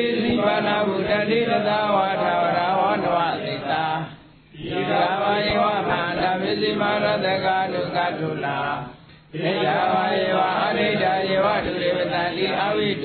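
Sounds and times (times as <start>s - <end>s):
person chanting: 0.0s - 13.0s.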